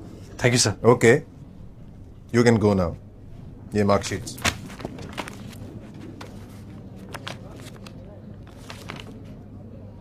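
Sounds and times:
low room hum: 0.0 - 10.0
paper sheets rustling: 4.0 - 9.4.

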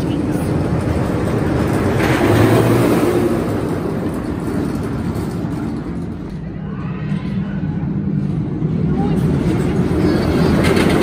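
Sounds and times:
roller coaster rumbling on track: 0.0 - 11.0.

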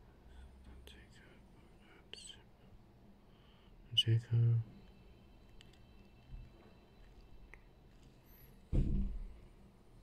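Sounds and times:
faint whisper: 0.0 - 4.8.

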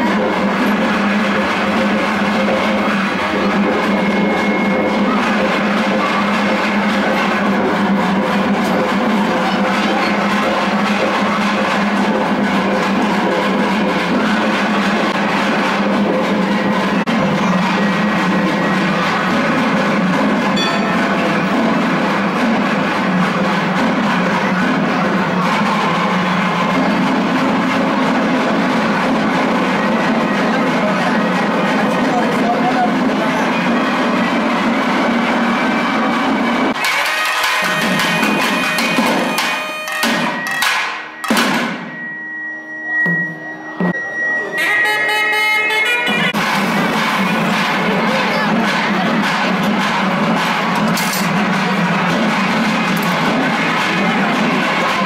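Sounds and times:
loud music with drums: 0.0 - 42.2, 44.6 - 55.0.

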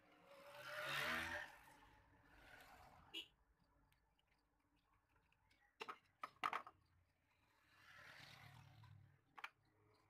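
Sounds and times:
passing vehicle engine: 0.2 - 3.0.

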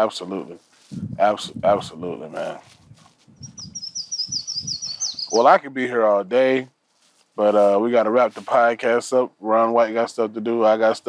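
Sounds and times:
songbird trilling: 3.4 - 5.5.

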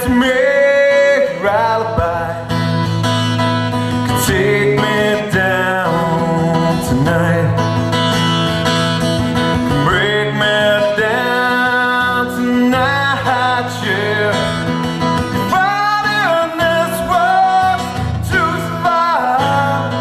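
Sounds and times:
man singing: 0.0 - 2.9, 3.9 - 8.4, 9.4 - 20.0
acoustic guitar: 0.0 - 20.0.

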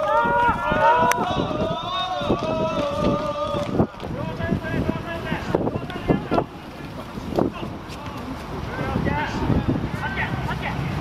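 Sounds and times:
voices chanting together: 0.0 - 6.4.

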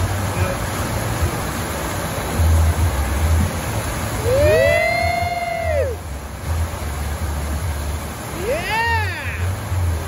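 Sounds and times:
rushing water: 0.0 - 10.0.

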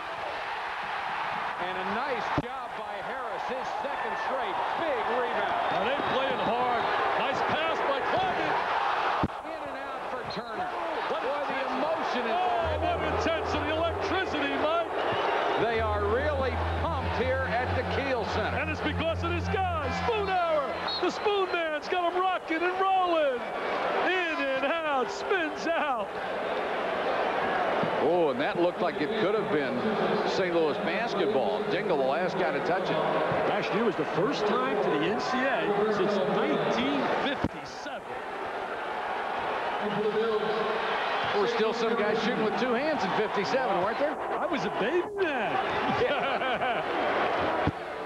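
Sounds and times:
crowd noise and voices: 0.0 - 48.0.

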